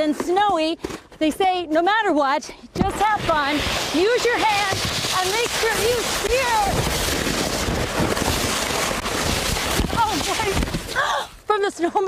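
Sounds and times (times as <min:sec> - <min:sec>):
sled scraping over slushy snow: 0:02.8 - 0:11.2.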